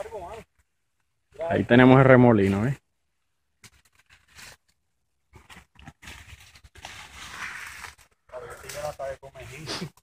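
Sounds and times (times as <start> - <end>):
footsteps on dry grass and brush: 3.5 - 9.8.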